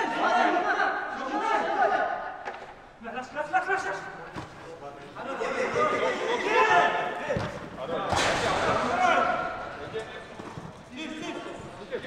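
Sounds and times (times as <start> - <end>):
footballers shouting in echoing hall: 0.0 - 12.0.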